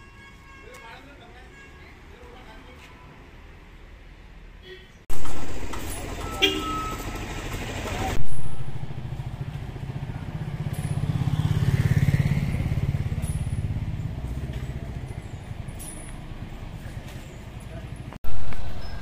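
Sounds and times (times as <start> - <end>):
vehicle engine low rumble: 5.1 - 19.0.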